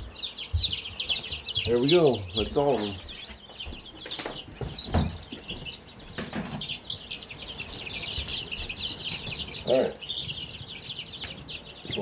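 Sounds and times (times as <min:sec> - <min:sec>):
baby chicks peeping: 0:00.0 - 0:12.0
dull knocks: 0:03.1 - 0:06.8.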